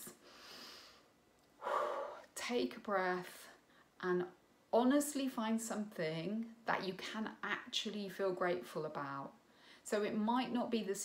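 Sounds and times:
woman breathing: 0.1 - 2.4, 9.4 - 9.9.

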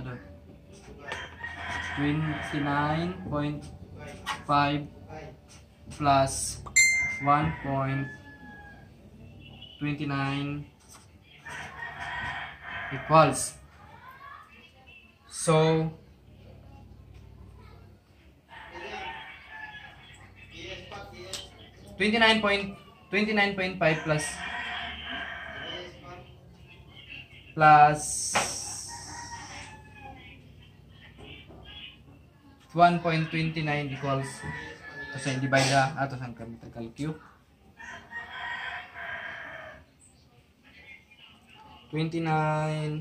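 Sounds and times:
rooster crowing: 1.0 - 3.2, 7.1 - 9.0, 11.4 - 13.6, 18.5 - 20.3, 23.8 - 26.2, 28.4 - 30.3, 33.8 - 35.8, 37.8 - 40.0
rooster crowing faintly: 16.4 - 20.4, 22.2 - 27.2, 28.1 - 31.2, 31.8 - 35.9
high hiss: 28.2 - 29.2.

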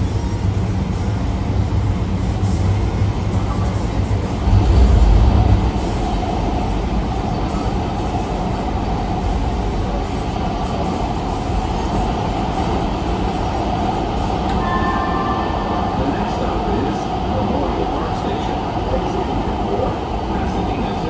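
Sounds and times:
wheels rolling on rail: 0.0 - 21.0.

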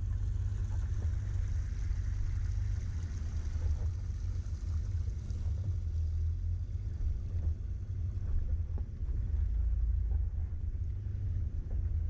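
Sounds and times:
vehicle engine low rumble: 0.0 - 12.0.

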